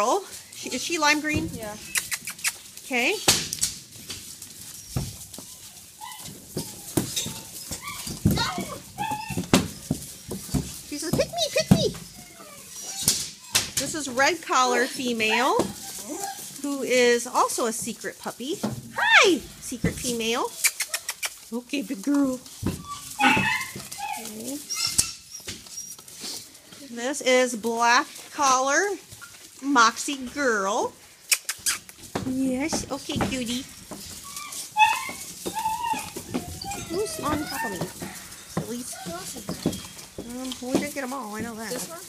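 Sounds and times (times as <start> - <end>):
woman's voice: 0.0 - 1.6, 2.9 - 3.3, 10.9 - 12.0, 13.8 - 15.7, 16.6 - 20.5, 21.5 - 22.5, 26.8 - 29.0, 29.6 - 31.0, 32.3 - 33.7, 36.7 - 38.0, 38.6 - 39.5, 40.2 - 42.0
puppies scrambling: 0.0 - 42.0
puppy whining: 0.3 - 2.7, 4.6 - 16.7, 19.0 - 21.5, 22.1 - 26.6, 33.3 - 42.0
short high squeaks: 1.8 - 2.6, 22.8 - 26.1
scuffs and knocks: 3.4 - 12.5, 32.0 - 42.0.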